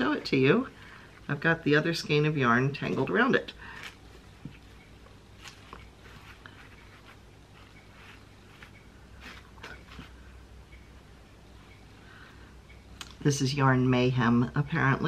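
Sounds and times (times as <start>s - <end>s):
low steady hum: 0.0s - 15.0s
yarn rustling and clicking: 2.8s - 10.3s.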